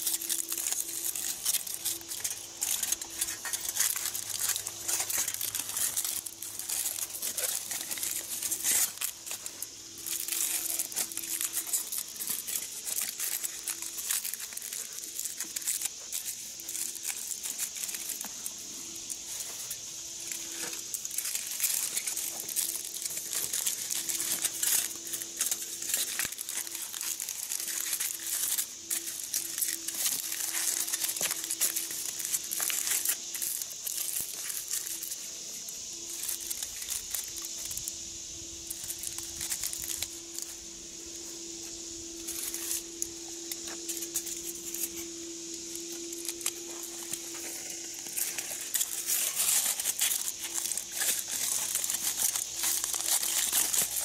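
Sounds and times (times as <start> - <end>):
aluminium foil crinkling: 0.0 - 54.0.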